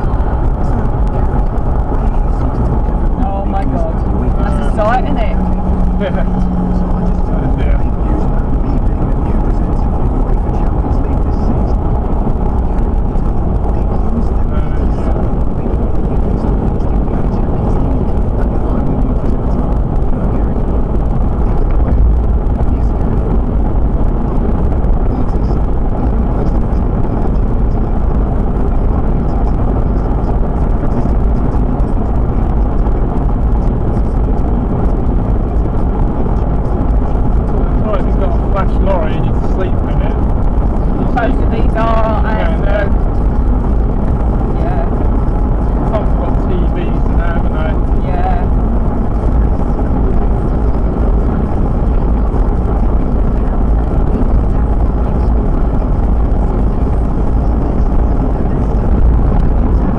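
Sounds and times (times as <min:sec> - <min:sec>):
car cabin road and engine rumble: 0:00.0 - 0:59.9.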